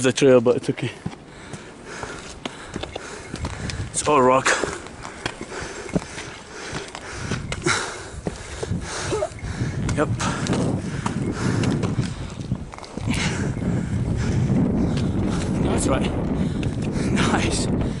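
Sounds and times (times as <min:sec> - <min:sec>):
wind buffeting microphone: 0:00.0 - 0:18.0
footsteps on rock: 0:00.6 - 0:13.4.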